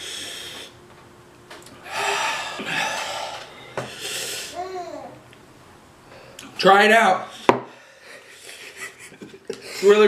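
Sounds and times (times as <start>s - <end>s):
man exhaling hard: 1.8s - 4.6s.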